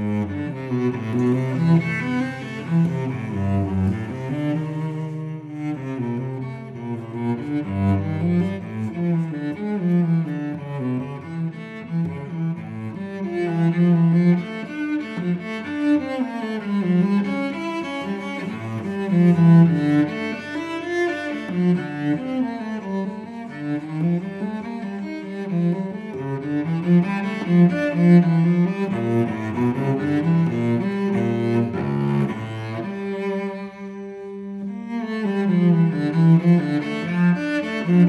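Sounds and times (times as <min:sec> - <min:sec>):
bowed cello melody: 0:00.0 - 0:38.0.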